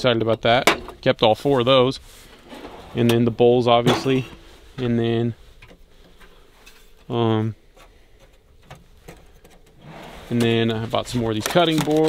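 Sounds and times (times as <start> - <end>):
drawer sliding: 2.2 - 4.5, 9.7 - 12.0.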